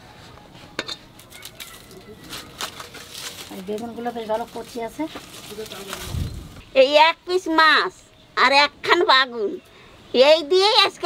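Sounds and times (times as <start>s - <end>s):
rustling: 1.2s - 6.7s.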